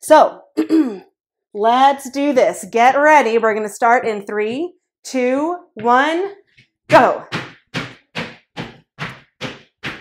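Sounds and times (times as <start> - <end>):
feet landing on floor: 6.9 - 10.0.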